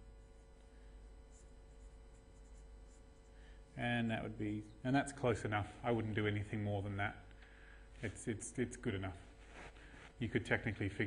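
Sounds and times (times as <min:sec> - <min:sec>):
pen scratching on paper: 0:01.3 - 0:03.4.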